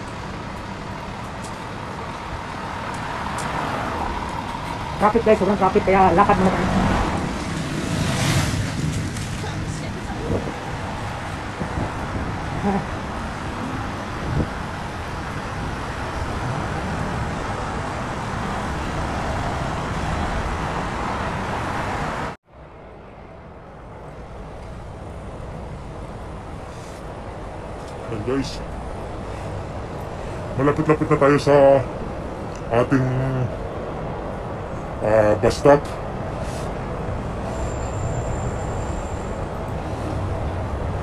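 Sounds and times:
car and truck engines running: 0.0s - 22.4s, 24.6s - 41.0s
steady background noise: 0.0s - 41.0s.

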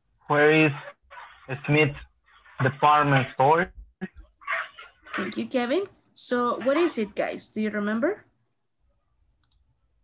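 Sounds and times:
person speaking: 0.2s - 7.9s.

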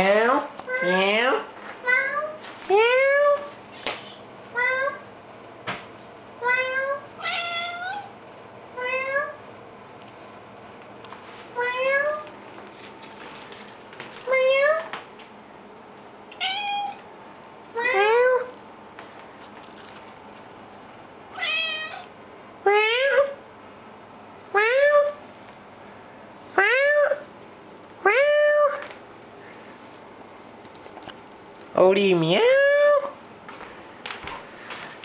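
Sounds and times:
cat meowing: 1.8s - 3.5s, 6.4s - 8.1s, 8.8s - 9.4s, 11.6s - 12.3s, 16.3s - 17.0s, 17.8s - 18.5s, 21.3s - 22.1s, 22.7s - 23.4s, 26.6s - 27.3s, 28.0s - 28.9s.

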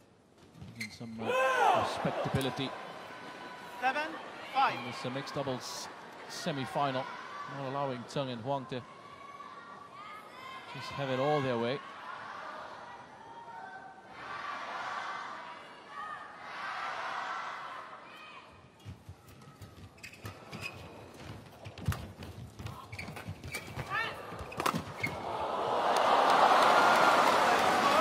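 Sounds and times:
shoe squeaks: 0.6s - 1.2s, 19.8s - 21.1s, 22.6s - 25.2s
crowd cheering and applause: 1.3s - 6.2s, 25.1s - 28.0s.

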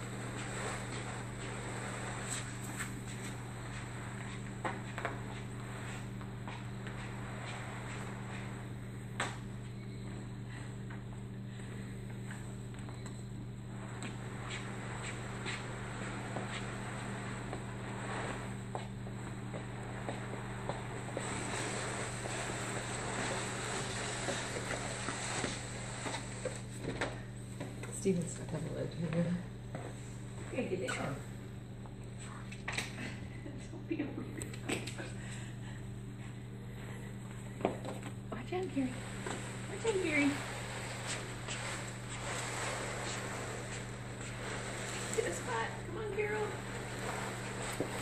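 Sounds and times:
rug dragged across laminate floor: 0.0s - 10.6s, 13.6s - 27.3s, 38.5s - 48.0s
fan hum with hiss: 0.0s - 48.0s.

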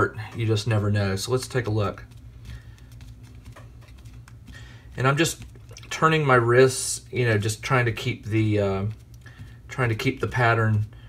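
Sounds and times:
damp sponge dabbing on cardstock: 0.0s - 11.0s
low steady hum: 0.0s - 11.0s.

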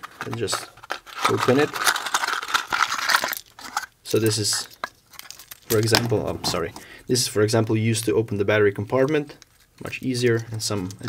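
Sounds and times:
packaging rustling and crinkling: 0.0s - 6.9s.

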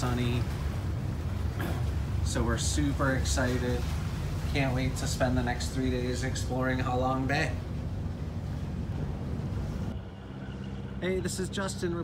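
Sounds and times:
boat engine rumble: 0.0s - 12.0s
steady low hum: 0.0s - 12.0s.

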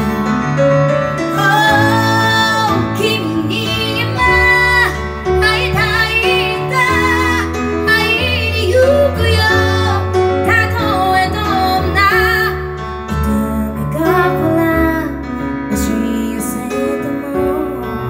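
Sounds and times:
woman singing pop ballad: 1.3s - 18.0s.

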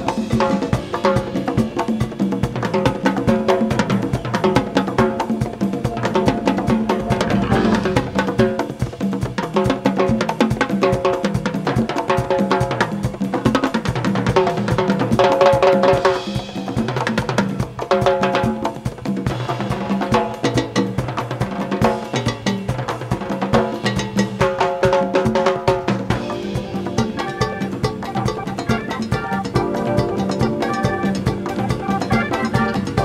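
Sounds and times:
rock band playing: 0.0s - 24.4s, 25.0s - 33.0s
congas: 0.0s - 33.0s
timbales: 3.2s - 9.8s.

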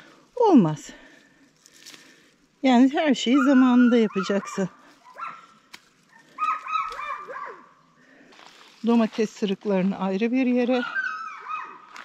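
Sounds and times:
dog barking: 3.3s - 7.8s, 10.7s - 12.0s.

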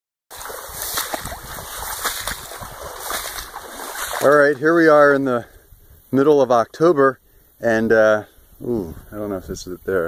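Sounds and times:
footsteps splashing through water: 0.3s - 4.9s.

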